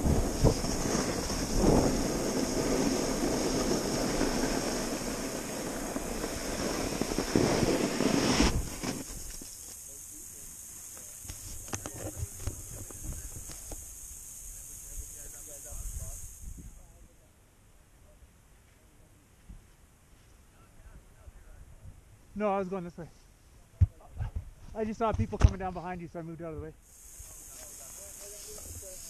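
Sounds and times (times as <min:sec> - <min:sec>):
wind rushing over microphone: 0:00.0 - 0:09.3
snowboard sliding through snow: 0:00.0 - 0:09.7
soft crunches in snow: 0:00.0 - 0:09.7.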